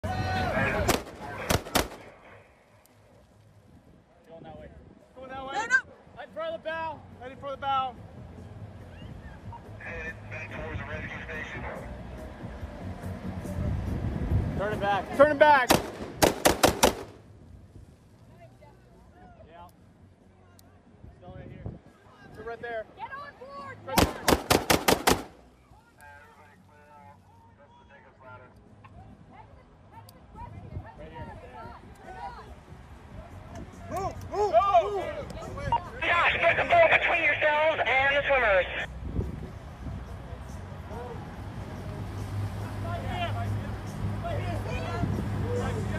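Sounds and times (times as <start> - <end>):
people shouting: 0.0 - 1.8, 33.9 - 35.1
gunshots: 0.8 - 2.2, 15.7 - 17.2, 24.0 - 25.4.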